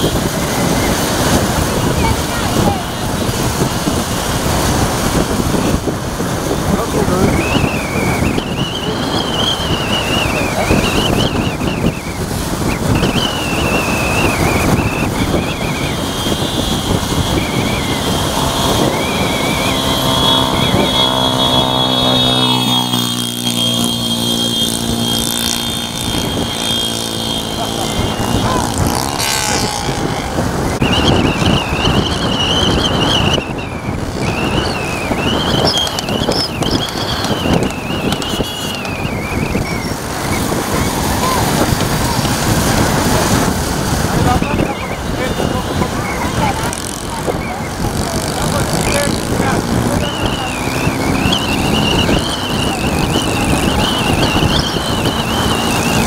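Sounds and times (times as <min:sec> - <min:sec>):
motorcycles and cars at speed: 0:00.0 - 0:56.0
wind on microphone: 0:00.0 - 0:56.0
high wavering whistle: 0:07.1 - 0:41.4, 0:49.9 - 0:56.0.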